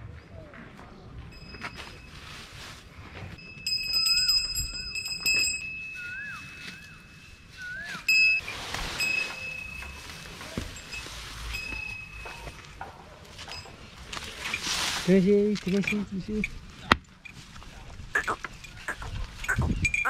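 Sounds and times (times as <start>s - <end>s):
small metal bell ringing: 1.3s - 2.3s, 3.4s - 7.3s, 10.7s - 12.7s, 18.2s - 20.0s
fodder rustling: 6.5s - 15.8s.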